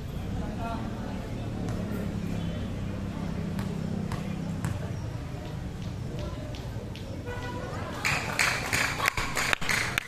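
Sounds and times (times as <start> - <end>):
basketball bouncing on concrete: 3.5 - 7.1.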